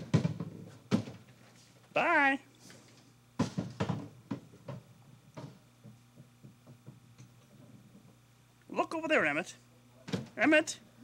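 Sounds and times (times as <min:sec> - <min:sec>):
bass drum bumped across wooden floor: 0:00.0 - 0:01.3, 0:03.4 - 0:07.0.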